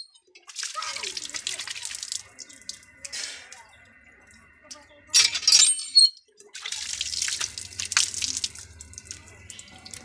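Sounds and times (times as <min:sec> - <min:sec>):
water splashing: 0:00.5 - 0:03.6, 0:06.5 - 0:10.0.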